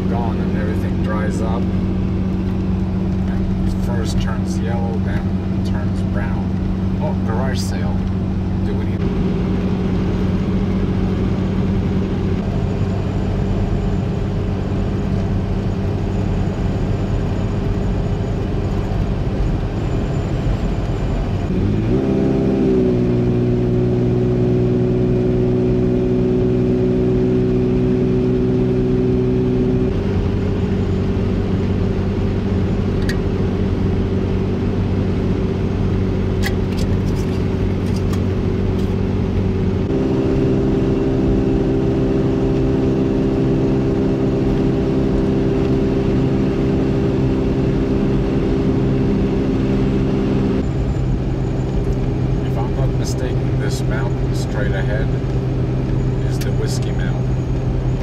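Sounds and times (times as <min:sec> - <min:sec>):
car interior engine and tyre drone: 0:00.0 - 0:58.0.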